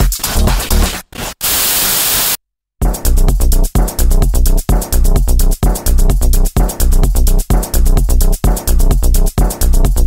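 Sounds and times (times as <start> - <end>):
techno kick-drum beat: 0.0 - 1.0, 2.8 - 10.0
burst of white-noise static: 1.2 - 2.4.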